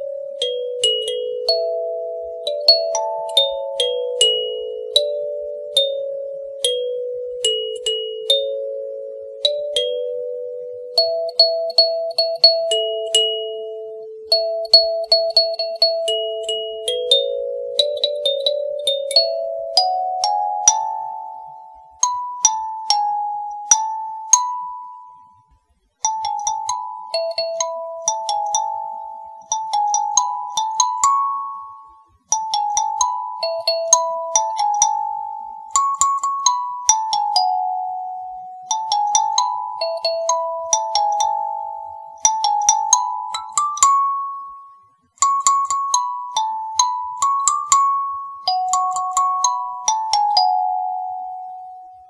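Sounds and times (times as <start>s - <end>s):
kalimba melody: 0.0s - 25.4s, 26.0s - 51.9s.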